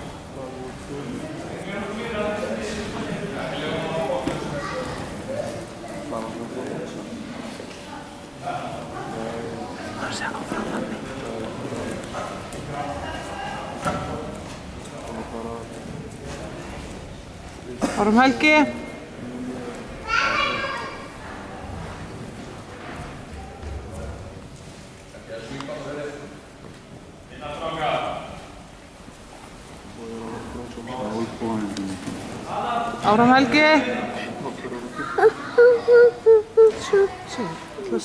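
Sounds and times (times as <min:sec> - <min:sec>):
room noise: 0:00.0 - 0:38.0
people talking: 0:32.6 - 0:38.0
high-pitched voice shouting: 0:35.2 - 0:37.3.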